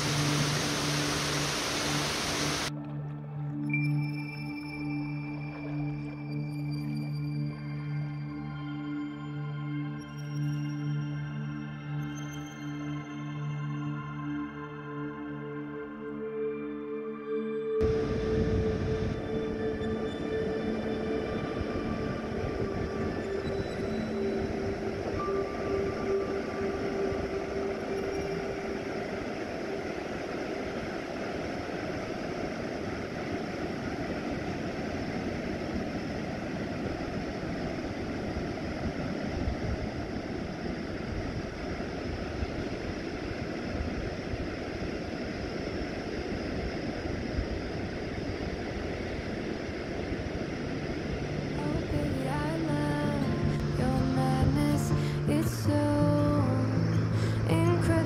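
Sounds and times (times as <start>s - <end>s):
waves breaking on beach: 0.0s - 2.7s, 17.8s - 58.0s
ambient music tones: 0.0s - 58.0s.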